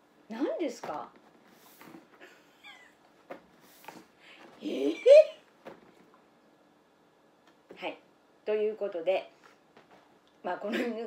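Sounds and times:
soft rustles: 0.7 - 4.7.

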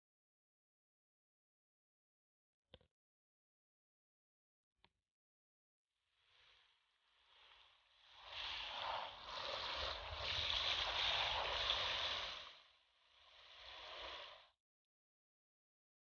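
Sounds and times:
hose spray splashing into bowl: 8.2 - 12.6.

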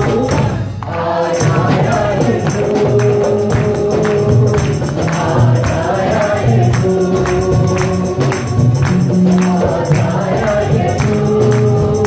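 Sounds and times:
acoustic guitar: 0.0 - 12.0
person singing: 0.0 - 12.0
tambourine beat: 0.0 - 12.0.

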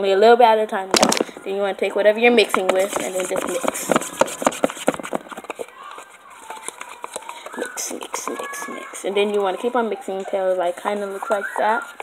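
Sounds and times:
spoon stirring in plastic container: 2.4 - 12.0.

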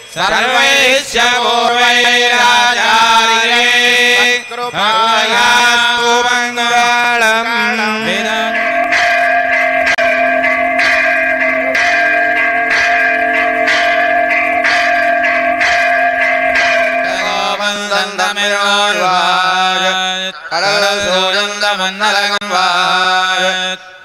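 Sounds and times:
temple bell strikes: 0.0 - 19.9
steady held tones: 0.0 - 21.1
chant-like melody: 0.0 - 24.0.

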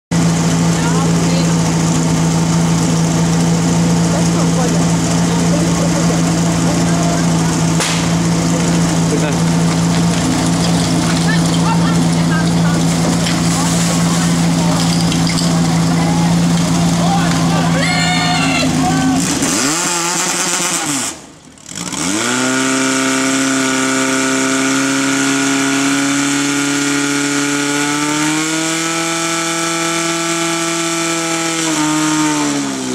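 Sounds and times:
fire pump engine running: 0.1 - 32.9
people shouting: 15.9 - 19.4.

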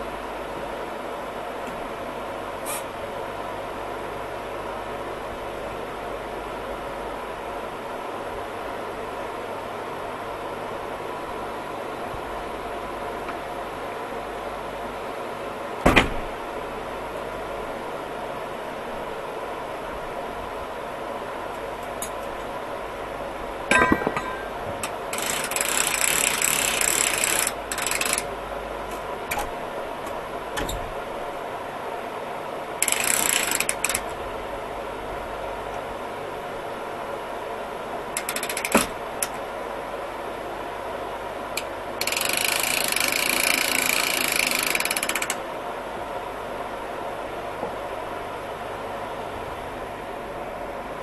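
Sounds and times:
steady mechanical hum: 0.0 - 51.0
metal rattle: 23.7 - 25.6
metal ratchet clicking: 25.1 - 28.3, 32.8 - 34.1, 38.2 - 39.3, 42.0 - 45.4.

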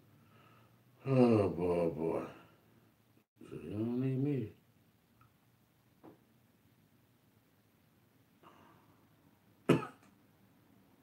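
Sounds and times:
man coughing: 9.7 - 10.0.

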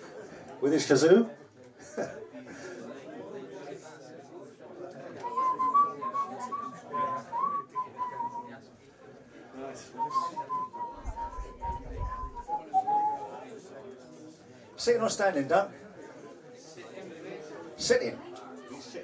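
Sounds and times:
low room chatter: 0.0 - 19.0
person whistling a tune: 5.2 - 8.5, 10.0 - 13.4.

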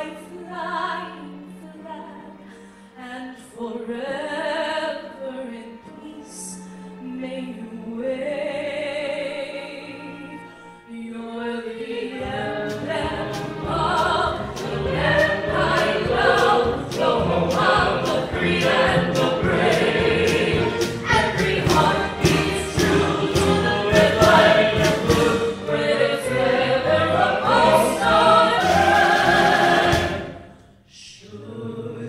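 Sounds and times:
soloists singing with orchestra: 0.0 - 32.0.

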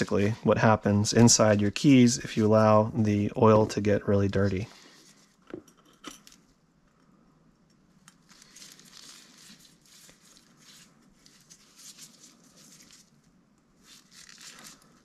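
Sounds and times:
swab rustling and scrubbing: 8.3 - 15.0.

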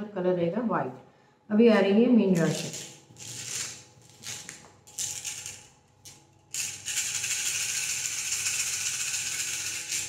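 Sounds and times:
small pieces rattled in hands: 2.4 - 10.0.

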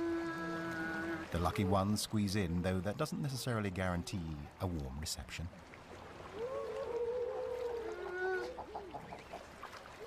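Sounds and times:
seals calling: 0.0 - 2.0, 6.3 - 10.0.

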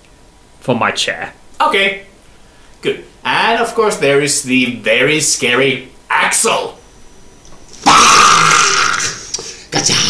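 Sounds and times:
man roaring like a monster: 7.8 - 10.0
vocal outburst: 7.8 - 10.0.

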